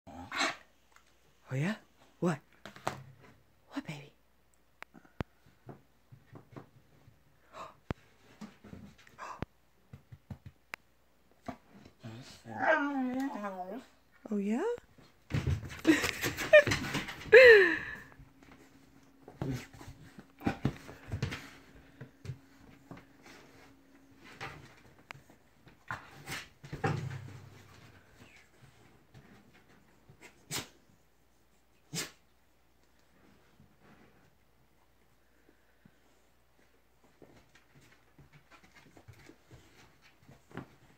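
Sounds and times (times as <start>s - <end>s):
puppy wavering vocal sound: 12.0s - 13.9s.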